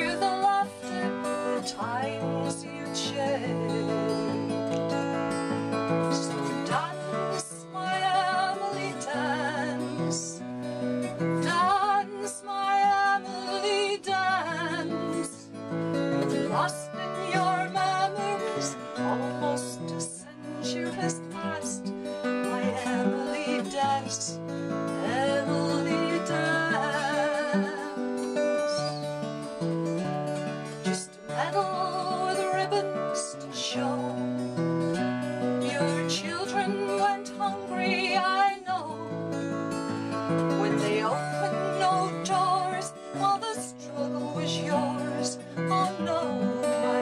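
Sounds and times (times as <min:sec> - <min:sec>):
woman singing with vibrato: 0:00.0 - 0:04.2, 0:06.0 - 0:10.4, 0:11.4 - 0:24.4, 0:25.0 - 0:29.0, 0:30.8 - 0:34.4, 0:35.6 - 0:39.2, 0:40.5 - 0:47.0
acoustic guitar: 0:00.0 - 0:47.0.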